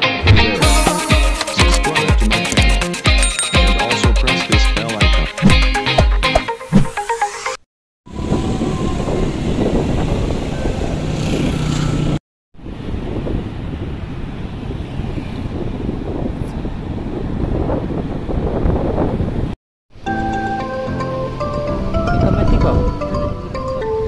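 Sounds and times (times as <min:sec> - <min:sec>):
wind buffeting microphone: 0:08.1 - 0:19.6, 0:21.4 - 0:24.0.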